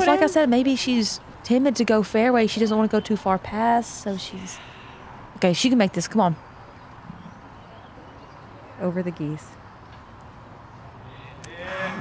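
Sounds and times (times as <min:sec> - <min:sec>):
voices calling out: 0:00.0 - 0:00.8, 0:11.0 - 0:12.0.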